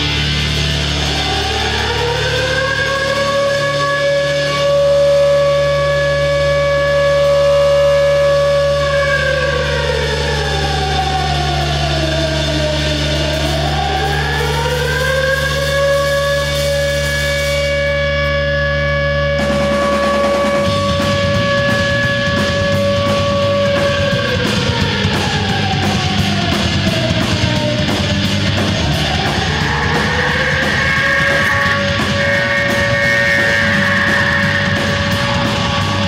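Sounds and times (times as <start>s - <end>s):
rock band playing: 0.0s - 11.9s, 12.8s - 36.0s
low drone: 0.0s - 36.0s
siren-like sustained noise tone: 0.0s - 36.0s.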